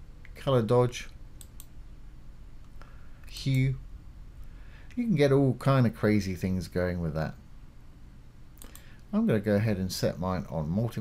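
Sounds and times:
low steady hum: 0.0 - 11.0
computer mouse clicks: 1.4 - 1.8, 8.6 - 9.0.

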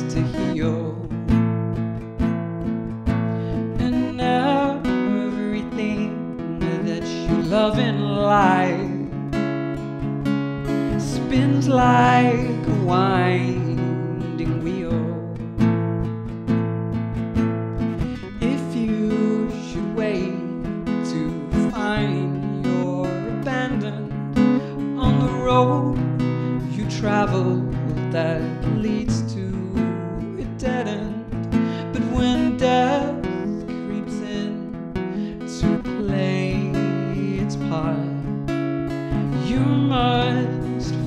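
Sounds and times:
acoustic guitar strumming: 0.0 - 41.0.

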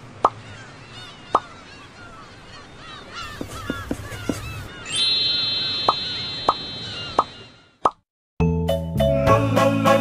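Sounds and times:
high ringing chime tone: 4.9 - 7.1.

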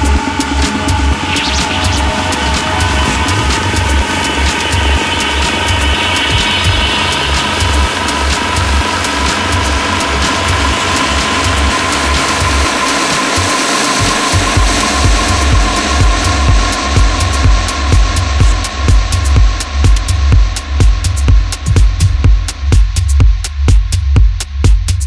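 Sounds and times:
electronic dance track: 0.0 - 25.0
pulsing bass beat: 0.0 - 25.0.

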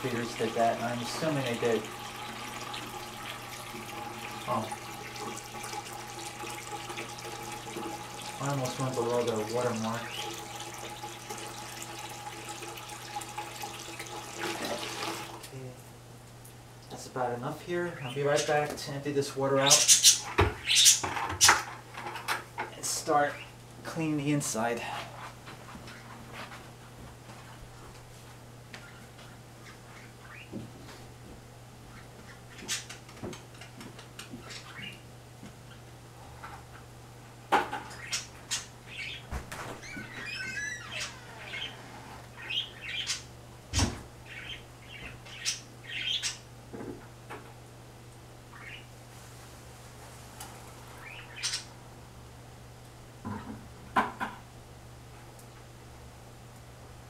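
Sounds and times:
bird chirps and squawks: 19.7 - 21.0, 37.9 - 43.3, 44.3 - 46.4, 48.5 - 48.9, 51.0 - 51.7.

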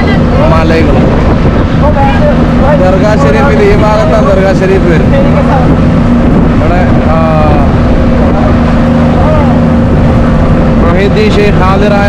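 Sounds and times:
motorboat engine drone: 0.0 - 12.0.

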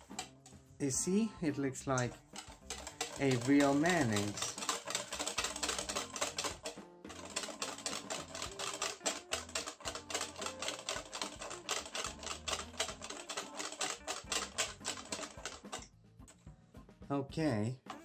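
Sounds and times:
whisk beating against steel bowl: 0.0 - 0.3, 1.8 - 15.8.

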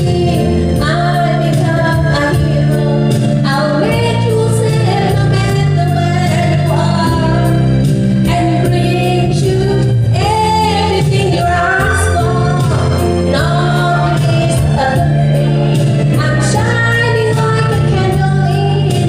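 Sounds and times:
amplified backing music with beat: 0.0 - 19.0
woman singing into microphone: 0.0 - 19.0.

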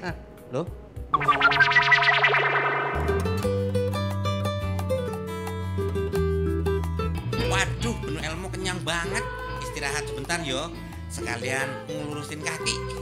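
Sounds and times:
sweeping transition effect: 1.2 - 3.6
music with bass and guitar: 2.9 - 13.0.

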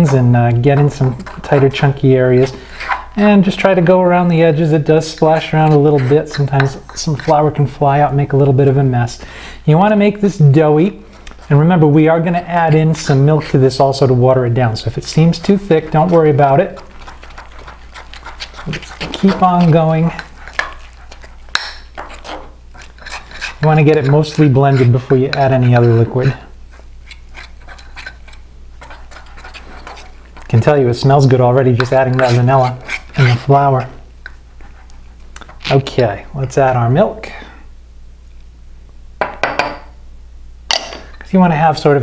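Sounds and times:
fork scraping a mug: 0.0 - 3.2, 5.2 - 7.5, 15.2 - 30.3, 31.8 - 33.9.

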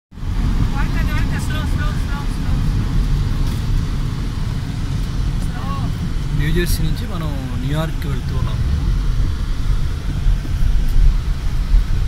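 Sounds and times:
car road and engine rumble: 0.1 - 12.0.

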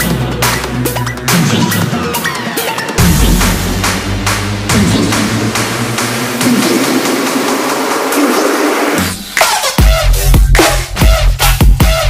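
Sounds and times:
electronic trap beat: 0.0 - 12.0.

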